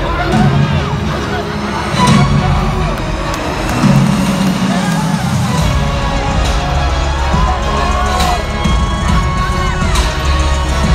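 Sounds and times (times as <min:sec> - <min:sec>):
music over public address system: 0:00.0 - 0:10.9.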